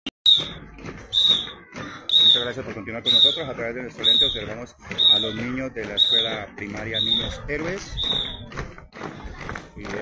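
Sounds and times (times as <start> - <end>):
whistle blasts: 0.3 - 3.4, 4.0 - 5.4, 6.0 - 6.3, 7.0 - 7.4, 8.0 - 8.4
low street noise: 0.3 - 10.0.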